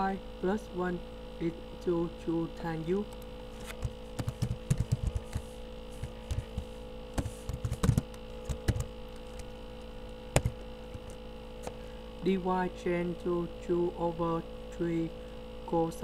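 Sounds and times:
electrical mains hum: 0.0 - 16.0
keyboard keys clicking: 3.8 - 5.4, 7.2 - 9.5, 10.4 - 11.2.

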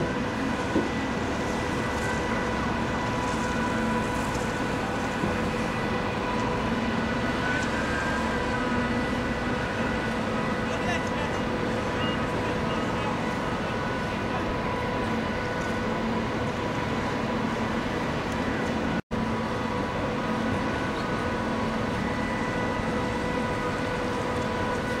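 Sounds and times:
ferry engines droning: 0.0 - 25.0.

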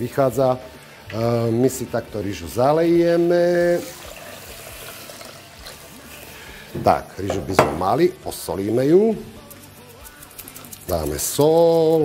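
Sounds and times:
water pouring into pot: 0.7 - 7.8.

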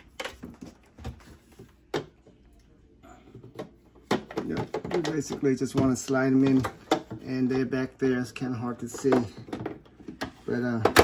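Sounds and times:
plastic clicks and knocks: 3.4 - 7.2.

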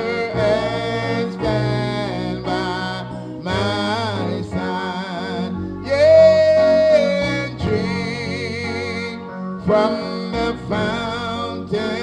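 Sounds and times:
instrumental accompaniment: 0.0 - 12.0
man singing with vibrato: 0.0 - 12.0.

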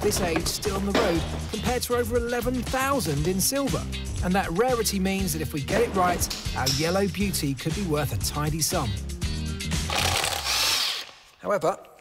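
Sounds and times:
background music: 0.0 - 11.9
impact wrench rattling buzz: 9.8 - 11.3.

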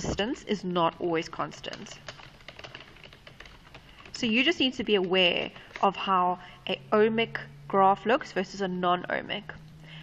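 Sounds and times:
low room noise: 0.0 - 10.0
computer keyboard clicks: 1.5 - 5.9.

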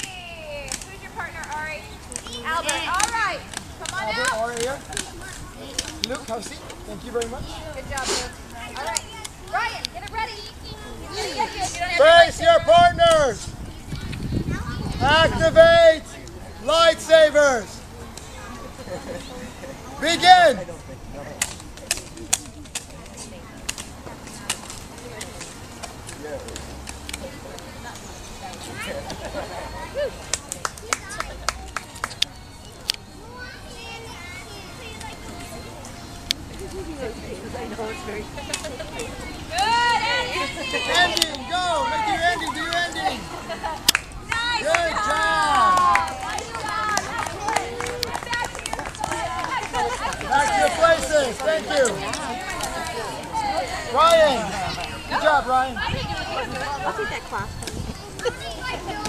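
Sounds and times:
children talking and calling out: 0.0 - 59.0
faint voices: 0.0 - 59.0
plastic toy lightsabers clacking: 0.7 - 5.1, 5.7 - 6.2
hand claps: 30.3 - 32.3, 43.8 - 51.2.

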